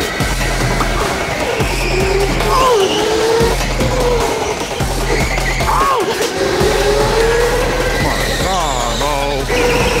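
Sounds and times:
music with heavy bass line: 0.0 - 10.0.

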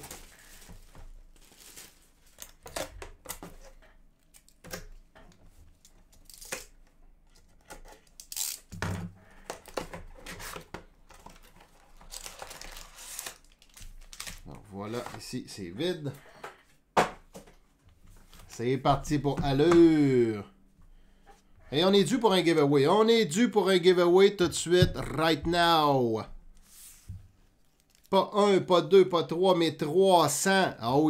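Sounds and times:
wrapping rustling: 0.0 - 4.6, 11.2 - 15.3.

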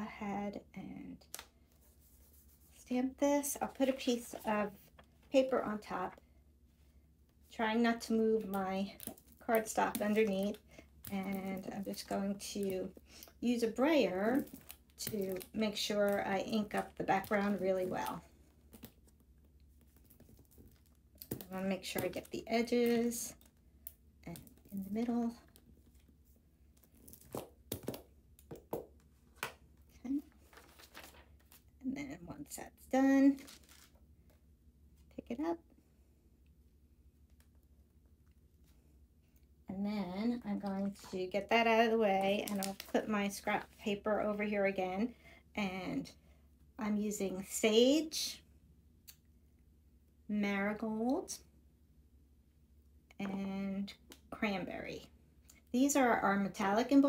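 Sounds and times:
paper rustling: 30.3 - 31.6, 33.3 - 34.0, 42.3 - 43.8.

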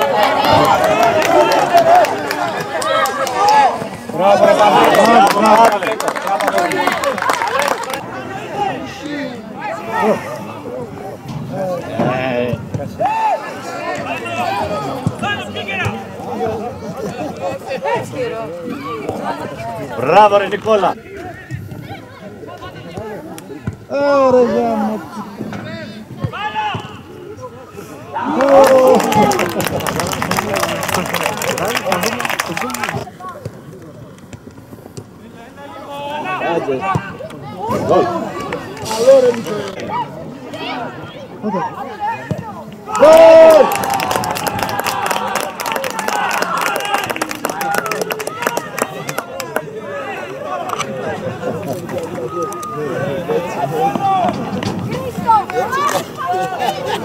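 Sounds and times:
players shouting: 0.0 - 11.1, 25.8 - 33.1, 35.5 - 57.0
people shouting: 42.9 - 45.4.

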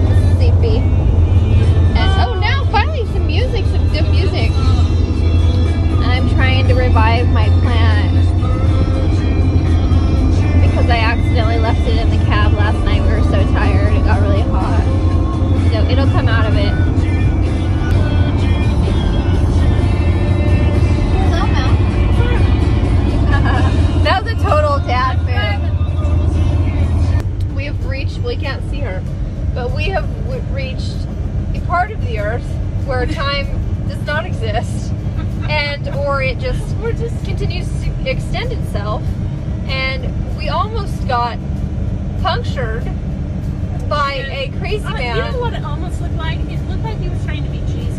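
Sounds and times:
vehicle drone on the road: 0.0 - 47.9.

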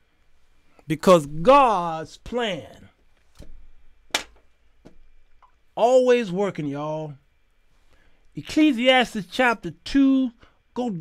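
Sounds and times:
sharp taps on a tablet: 4.1 - 5.0.

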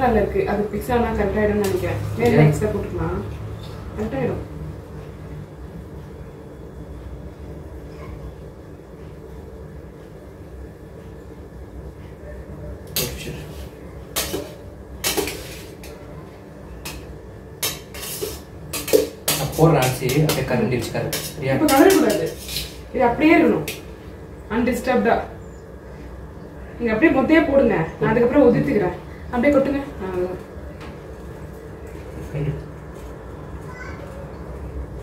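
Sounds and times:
metal spoon scraping a pot: 14.2 - 16.0, 17.6 - 22.9.

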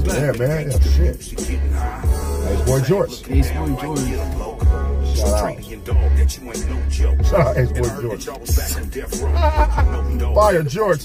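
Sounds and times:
rapping over heavy bass: 0.0 - 11.0.

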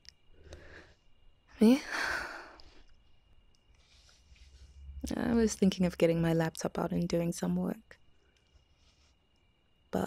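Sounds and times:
woman speaking: 1.6 - 2.2, 5.0 - 7.9
woman sighing: 1.6 - 2.8.

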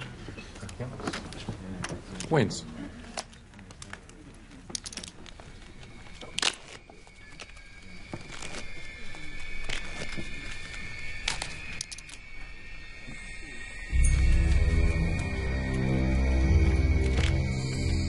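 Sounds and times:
suspense music high note: 8.8 - 18.0.

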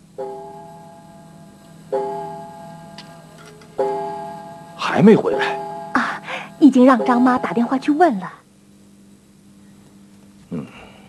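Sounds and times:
chiming clock striking: 0.0 - 8.3.

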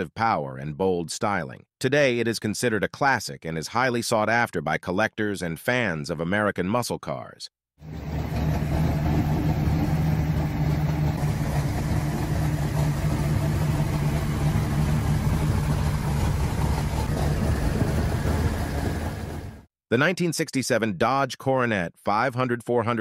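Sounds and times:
car engine idling: 7.8 - 19.7.

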